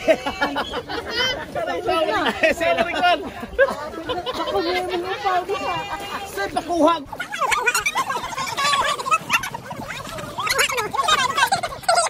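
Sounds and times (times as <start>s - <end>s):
people laughing and calling out: 0.0s - 12.0s.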